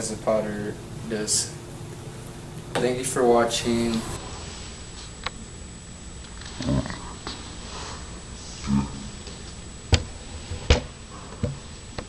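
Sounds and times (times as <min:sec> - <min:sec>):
low vocal sounds: 0:08.6 - 0:09.2.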